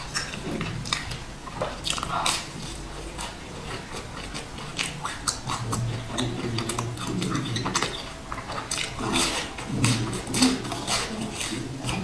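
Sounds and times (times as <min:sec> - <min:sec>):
close chewing of cake: 0:00.0 - 0:12.0
mouth clicks and smacks: 0:00.0 - 0:12.0.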